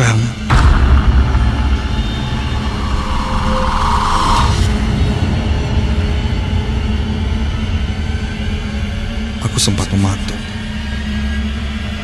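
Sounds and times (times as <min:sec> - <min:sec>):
low rumbling drone: 0:00.4 - 0:12.0
rising hiss-like swell: 0:00.5 - 0:09.3.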